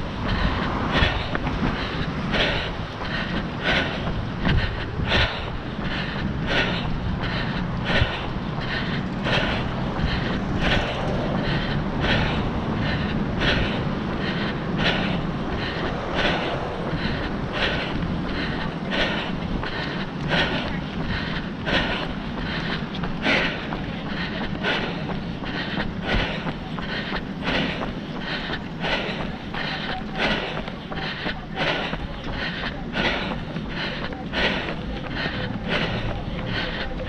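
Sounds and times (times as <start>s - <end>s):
wind on microphone: 0.0s - 21.0s
running footfalls: 0.0s - 37.0s.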